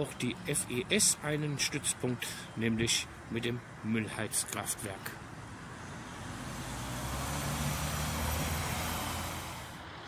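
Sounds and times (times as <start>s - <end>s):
vehicle driving past: 5.5s - 10.0s.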